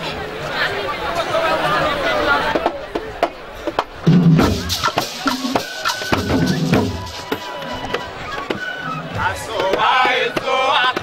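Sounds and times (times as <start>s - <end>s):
hand drums struck with palms: 2.6s - 7.4s
voices singing or chanting: 4.3s - 11.0s.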